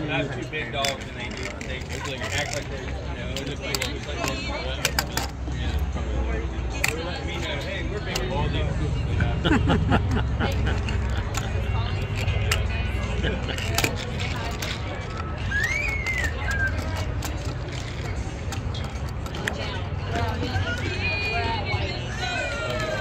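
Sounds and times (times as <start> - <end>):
background music: 0.0 - 23.0
indistinct voices: 0.0 - 23.0.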